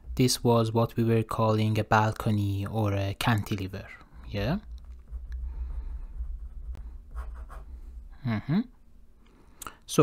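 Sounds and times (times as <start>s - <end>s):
steady low hum: 0.0s - 10.0s
pen scratching on paper: 6.2s - 7.8s.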